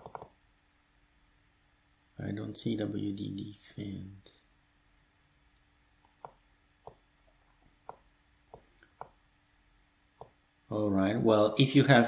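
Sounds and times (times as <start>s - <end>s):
computer mouse click: 0.0s - 0.4s
faint steady hum: 0.0s - 12.0s.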